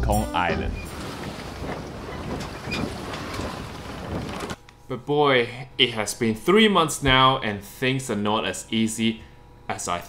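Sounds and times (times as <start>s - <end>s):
ferry engine noise: 0.0s - 4.6s.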